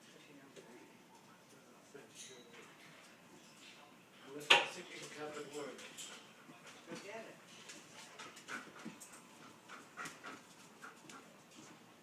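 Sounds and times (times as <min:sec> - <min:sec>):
dog panting: 0:05.2 - 0:12.0.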